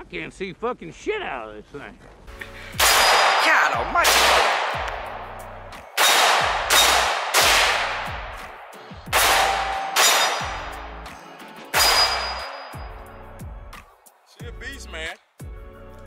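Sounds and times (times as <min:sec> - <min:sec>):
rifle shots echoing: 0:02.8 - 0:11.0, 0:11.7 - 0:12.9.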